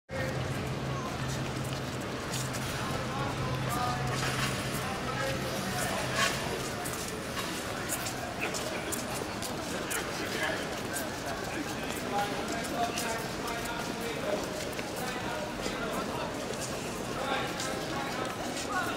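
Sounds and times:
chatter of many voices: 0:00.1 - 0:18.9
crowd footsteps on stone: 0:00.1 - 0:18.9.

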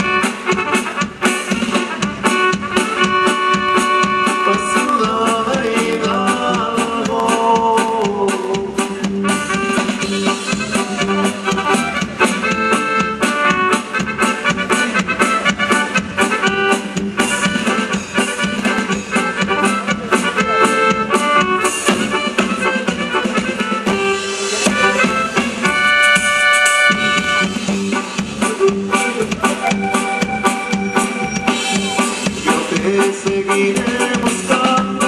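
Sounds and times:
accordion playing melody: 0:00.0 - 0:35.0
drum kit beat: 0:00.0 - 0:35.0.

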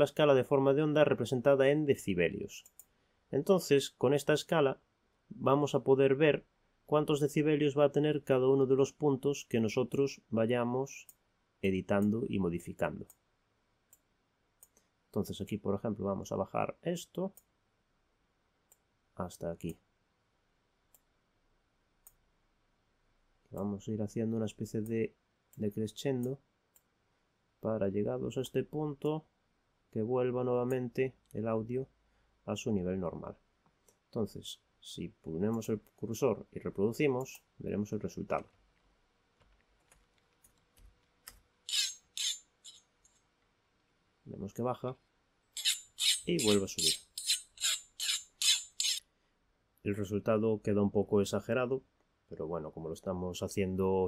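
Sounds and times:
faint computer mouse clicks: 0:02.6 - 0:02.9, 0:13.9 - 0:14.9.

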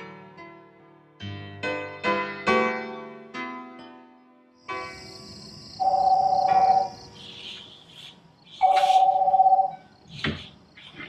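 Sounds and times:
video-call ringtone: 0:05.8 - 0:07.0, 0:08.6 - 0:09.9.

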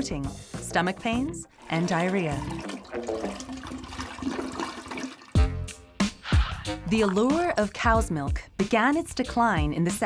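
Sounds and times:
toilet flushing: 0:01.5 - 0:05.6.

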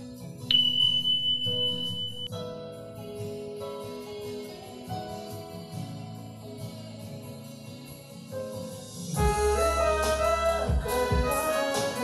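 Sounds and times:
high-pitched electronic beep: 0:00.5 - 0:02.3.

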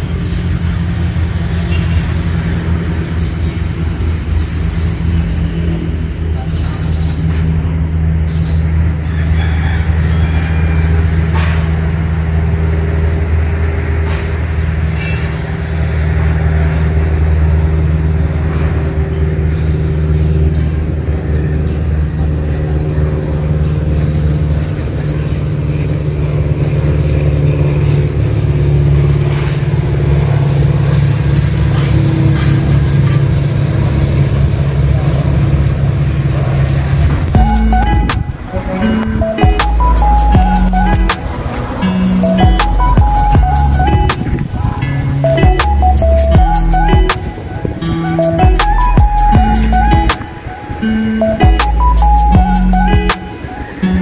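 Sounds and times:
low engine drone: 0:00.0 - 0:54.0.

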